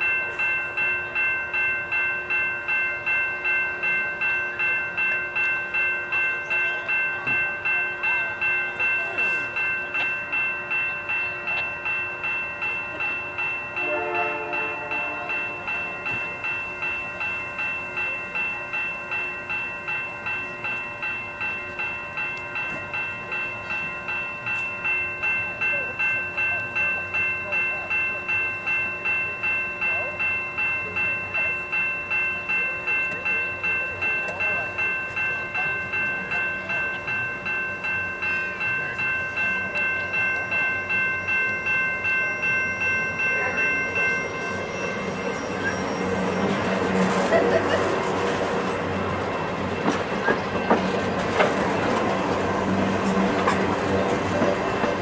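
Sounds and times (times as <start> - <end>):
crossing warning bell ringing: 0.0 - 55.0
diesel locomotive rumbling: 0.0 - 55.0.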